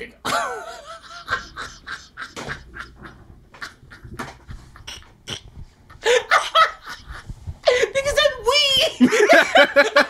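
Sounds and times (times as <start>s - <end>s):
man laughing: 0.2s - 5.2s, 5.9s - 8.0s, 9.0s - 10.0s.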